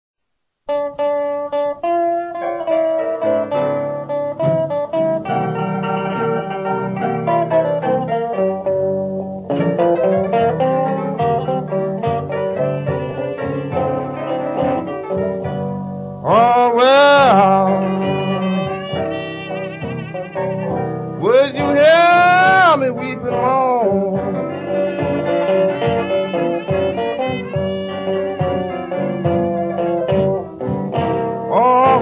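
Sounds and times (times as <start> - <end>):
blues guitar with small combo: 0.7 - 32.0.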